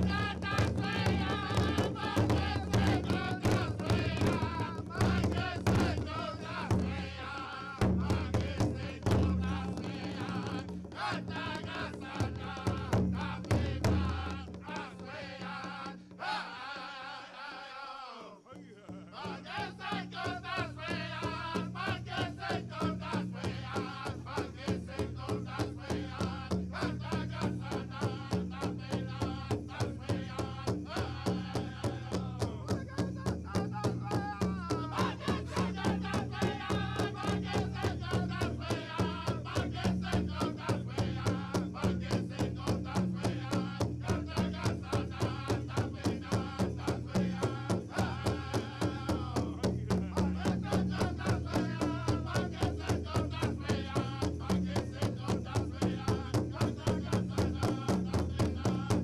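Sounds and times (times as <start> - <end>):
big drum beat: 0.0 - 15.7, 19.8 - 59.0
people singing: 0.0 - 59.0.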